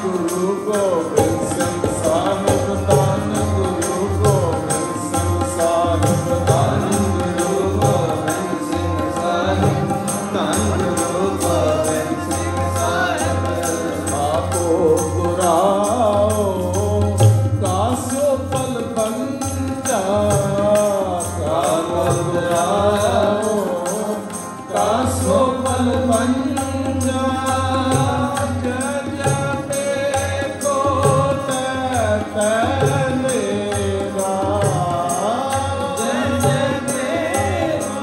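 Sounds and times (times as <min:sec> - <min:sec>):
harmonium chords: 0:00.0 - 0:38.0
man singing a hymn: 0:00.0 - 0:38.0
tabla beat: 0:00.0 - 0:38.0.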